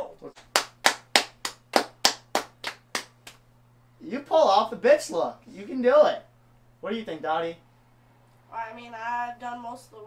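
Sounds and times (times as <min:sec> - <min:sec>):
hand clapping: 0:00.4 - 0:03.4.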